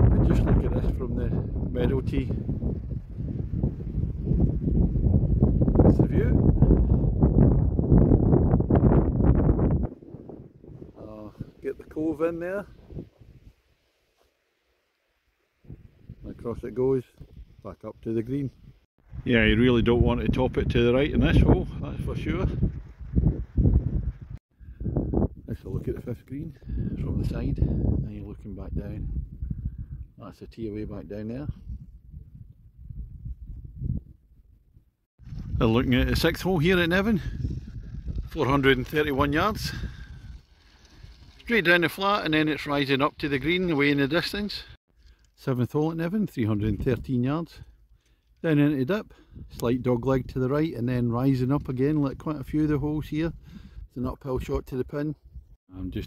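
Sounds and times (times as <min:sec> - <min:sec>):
wind buffeting microphone: 0:00.0 - 0:13.6, 0:15.6 - 0:17.7, 0:18.3 - 0:44.5, 0:46.4 - 0:56.0
quiet outdoor background: 0:00.0 - 0:56.0.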